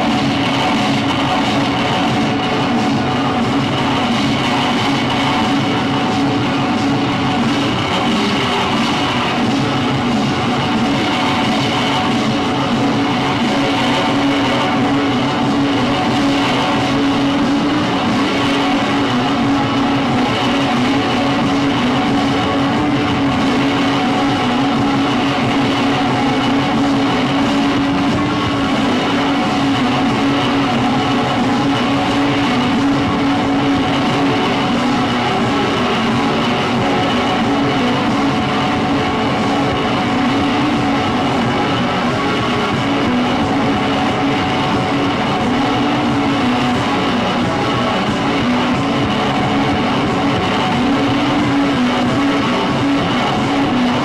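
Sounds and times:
electric guitar: 0:00.0 - 0:54.0
experimental noise music drone: 0:00.0 - 0:54.0.

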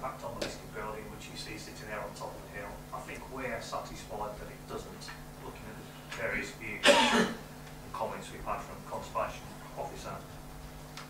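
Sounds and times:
person coughing: 0:06.8 - 0:07.4.

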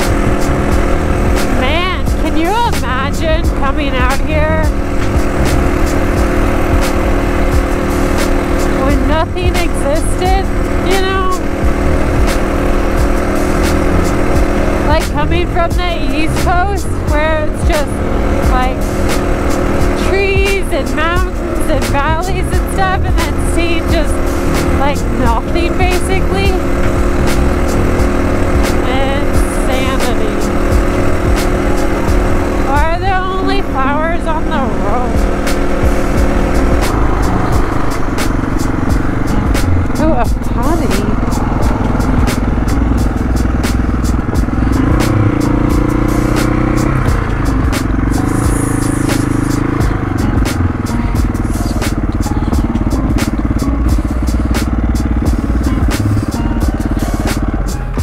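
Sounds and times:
background music: 0:00.0 - 0:58.0
dirt bike engine running: 0:00.0 - 0:58.0.

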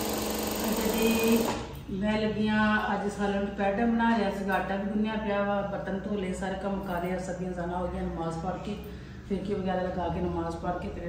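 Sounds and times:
sewing machine stitching rattle: 0:00.0 - 0:01.6.

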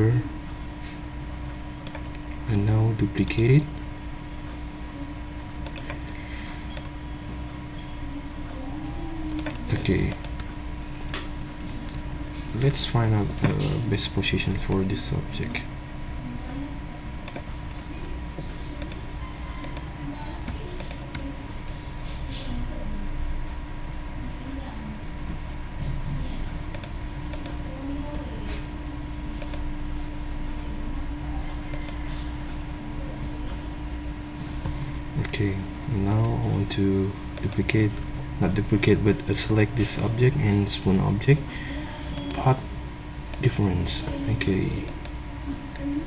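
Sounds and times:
steady electrical hum: 0:00.0 - 0:46.0
computer mouse clicking: 0:01.8 - 0:02.3, 0:05.6 - 0:06.1, 0:06.7 - 0:07.0, 0:09.3 - 0:12.8, 0:17.2 - 0:18.1, 0:18.7 - 0:19.0, 0:19.6 - 0:21.8, 0:26.7 - 0:28.2, 0:29.4 - 0:29.9, 0:31.7 - 0:32.4, 0:42.2 - 0:42.4.

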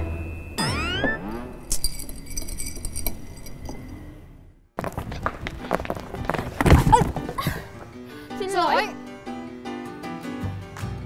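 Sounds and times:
glittering tinkle: 0:00.2 - 0:04.2.

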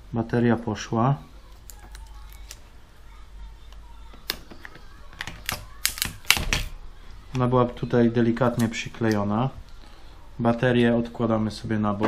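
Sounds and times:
plastic parts clicking: 0:04.2 - 0:06.7.

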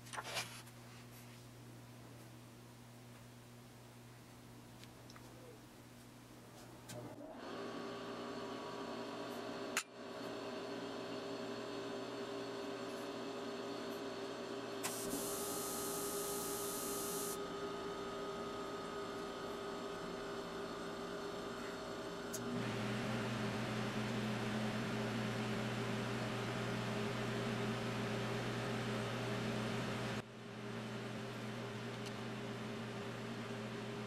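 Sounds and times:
room heater humming: 0:00.0 - 0:34.0.

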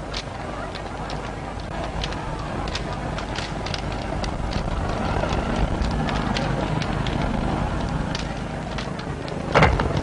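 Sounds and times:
fire roaring and crackling: 0:00.0 - 0:10.0.

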